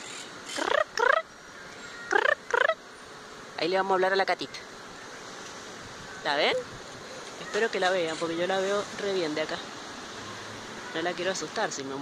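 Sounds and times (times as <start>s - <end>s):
parakeets squawking: 0.0s - 2.8s.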